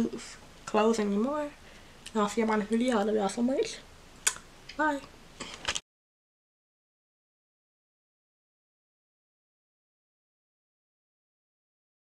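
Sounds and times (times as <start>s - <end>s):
woman talking: 0.0s - 3.8s, 4.8s - 5.1s.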